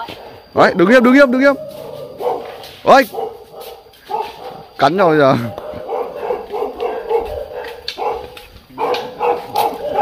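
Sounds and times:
dog barking: 0:01.6 - 0:04.8, 0:05.4 - 0:10.0.

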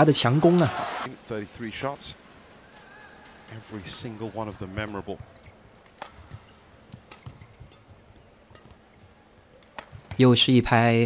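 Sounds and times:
racket hitting shuttlecock: 0:04.8 - 0:10.2.

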